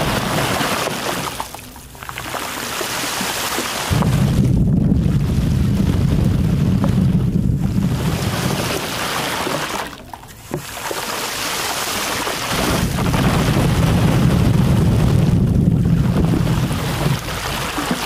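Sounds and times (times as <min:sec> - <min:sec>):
spray buffeting microphone: 0:03.9 - 0:09.0, 0:12.5 - 0:18.0.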